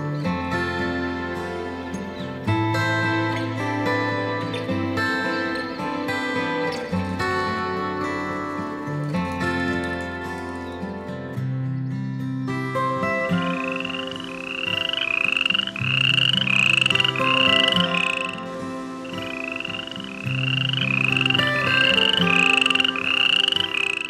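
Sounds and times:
soft background music: 0.0 - 24.0.

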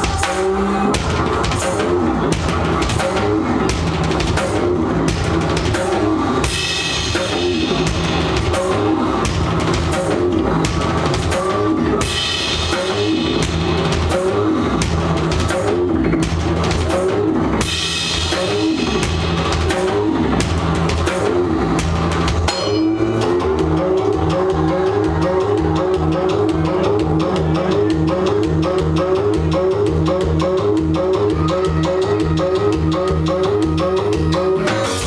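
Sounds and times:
drum kit: 0.0 - 35.0
synthesised bass and keyboard pattern: 0.0 - 35.0.

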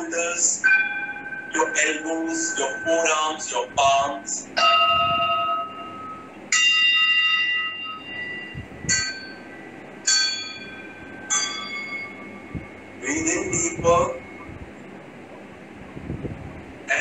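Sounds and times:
singing bowls ringing: 0.0 - 14.6.

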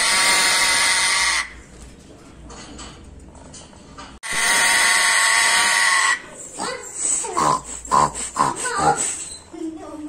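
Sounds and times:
parrot growling and calling: 0.0 - 1.6, 4.3 - 9.4.

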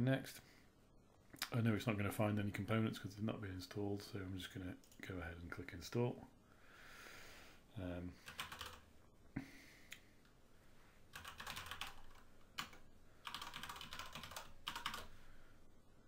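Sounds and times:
typing on computer keyboard: 8.2 - 8.8, 11.1 - 15.1.

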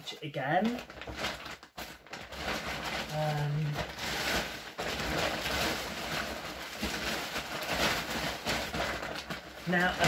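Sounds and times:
plastic bag rustling and crinkling: 0.0 - 10.0.

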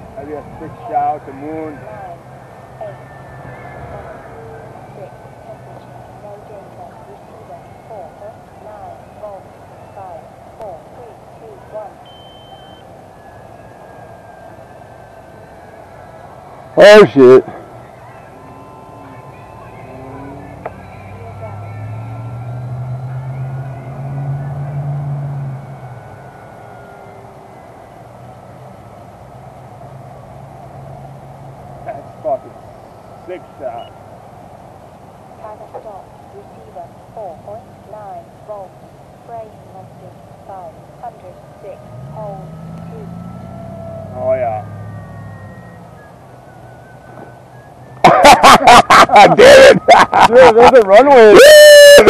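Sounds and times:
person laughing loudly: 48.0 - 52.0.

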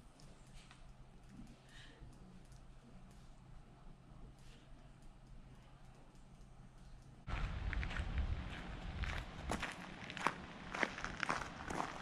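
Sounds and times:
footsteps on gravel: 7.3 - 12.0
low rumble: 7.3 - 12.0.

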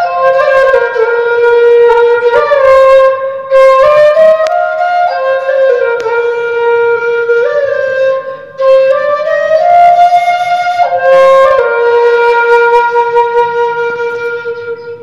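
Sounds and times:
flute playing slow melody: 0.0 - 15.0.

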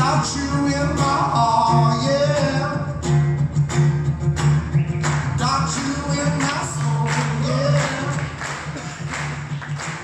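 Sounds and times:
acoustic guitar strummed: 0.0 - 10.0
voices singing together: 5.7 - 8.4.

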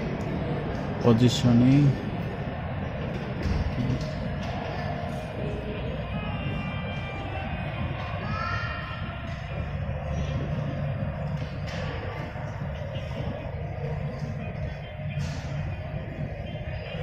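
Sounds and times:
distant voices: 0.0 - 17.0
faint background music: 0.0 - 17.0
steady low rumble: 0.0 - 17.0.

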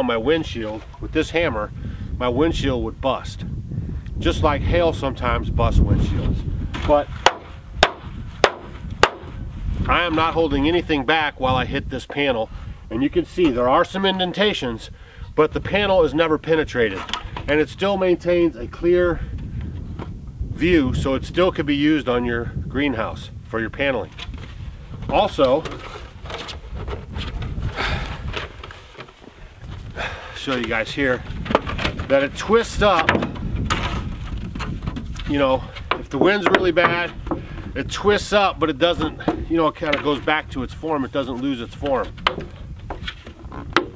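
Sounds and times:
plastic panel crackling: 30.5 - 37.5.

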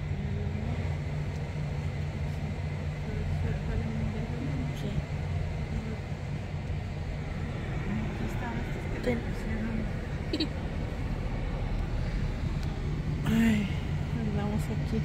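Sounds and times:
car engine rumble: 0.0 - 15.0
road noise: 0.0 - 15.0.

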